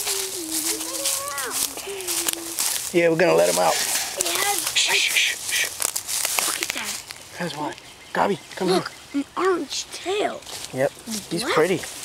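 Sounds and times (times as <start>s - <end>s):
footsteps crunching through dry leaves: 0.0s - 7.9s, 10.2s - 12.0s.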